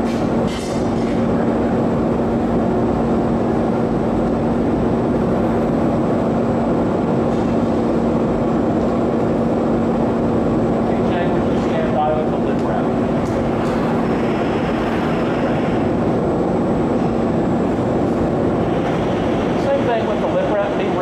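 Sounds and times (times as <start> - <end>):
constant low hum: 0.0 - 21.0
furnace burner roar: 0.0 - 21.0.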